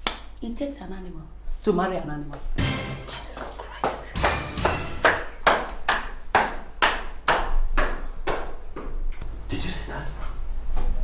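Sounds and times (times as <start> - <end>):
hard-soled footsteps on tiled stairs: 3.4 - 9.3.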